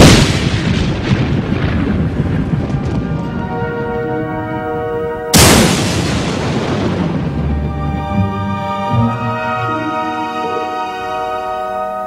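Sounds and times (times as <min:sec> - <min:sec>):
explosion boom with rumbling: 0:00.0 - 0:04.0, 0:05.3 - 0:07.9
held music chord: 0:03.1 - 0:05.6, 0:06.6 - 0:12.0.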